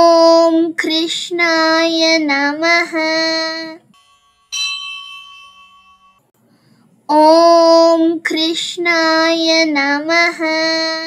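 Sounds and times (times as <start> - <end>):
bell ringing: 3.9 - 6.3.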